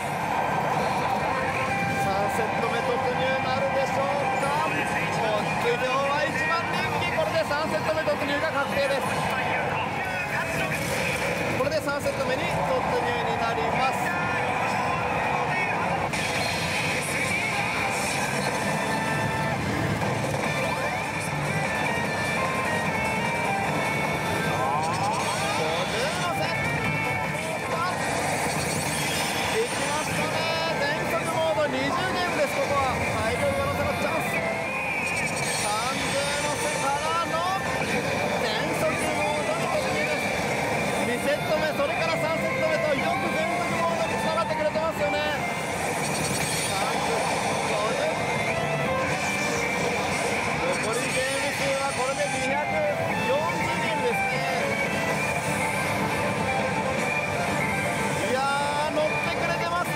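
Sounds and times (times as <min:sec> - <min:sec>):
dense din of gaming parlor: 0:00.0 - 0:59.9
slot machine music and effects: 0:00.0 - 0:59.9.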